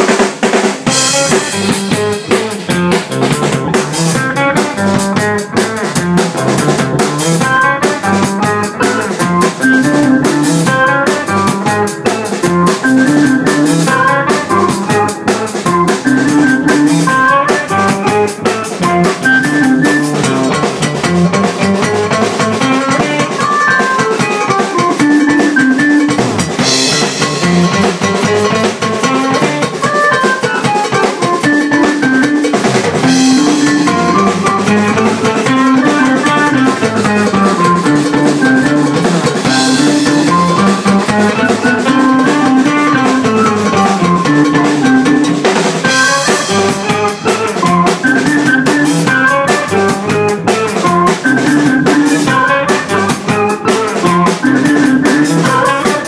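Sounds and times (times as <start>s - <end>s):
rock band playing: 0.0s - 56.0s.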